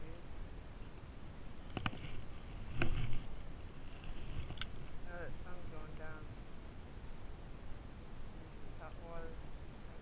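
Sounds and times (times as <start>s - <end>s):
low rumble: 1.2s - 10.0s.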